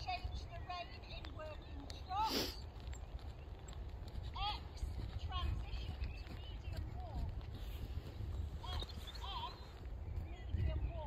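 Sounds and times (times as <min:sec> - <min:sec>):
horse hoofbeats: 0:00.0 - 0:11.0.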